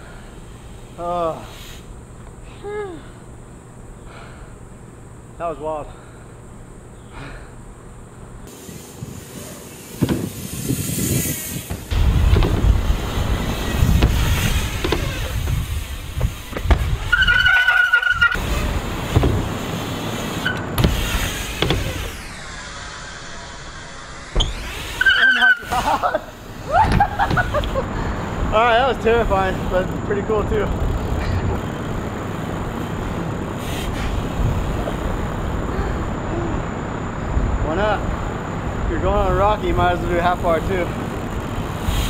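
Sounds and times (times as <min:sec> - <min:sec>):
bike tyres rumbling on wooden ramps: 0:08.5 - 0:22.4, 0:24.3 - 0:42.0
short high squeals: 0:13.4 - 0:18.8, 0:20.3 - 0:27.3.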